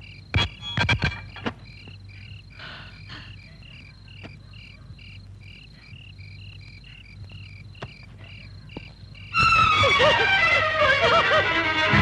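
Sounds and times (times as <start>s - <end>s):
insects chirping: 0.0s - 11.9s.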